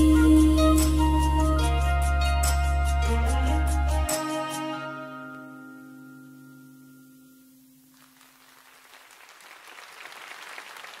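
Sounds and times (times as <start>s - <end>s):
applause: 7.9s - 11.0s.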